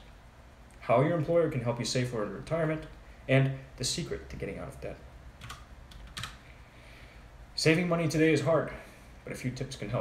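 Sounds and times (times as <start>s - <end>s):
computer keyboard keystrokes: 5.4s - 6.4s.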